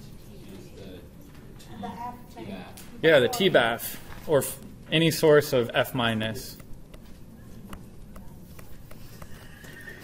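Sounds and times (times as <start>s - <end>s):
low room noise: 0.0s - 10.0s
stylus tapping on tablet screen: 6.5s - 9.8s.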